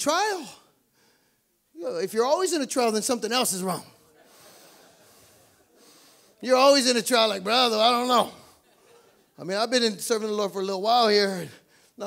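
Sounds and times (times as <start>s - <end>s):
low room hush: 0.0s - 12.0s
breathing into microphone: 0.8s - 1.5s, 4.2s - 6.4s, 11.5s - 12.0s.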